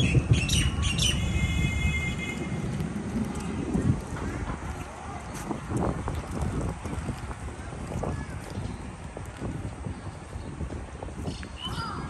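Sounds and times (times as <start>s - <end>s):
birds squawking and calling: 0.0s - 1.6s
steady low rumble: 0.0s - 11.6s.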